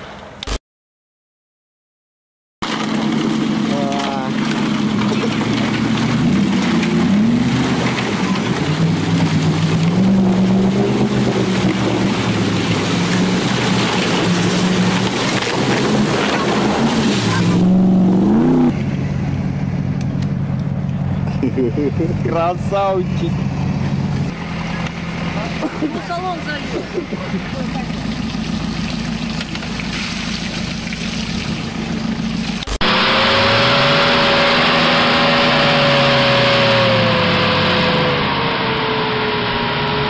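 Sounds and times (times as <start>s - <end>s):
engine revving: 2.6s - 40.0s.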